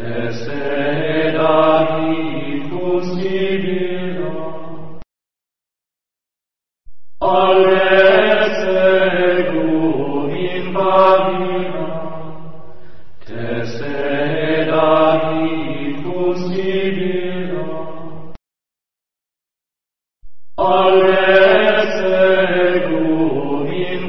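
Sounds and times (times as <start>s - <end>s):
person chanting: 0.0s - 5.0s, 7.2s - 18.3s, 20.6s - 24.0s.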